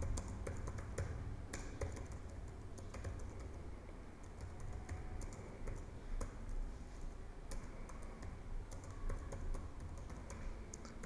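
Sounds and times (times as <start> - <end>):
low steady background rumble: 0.0 - 11.0.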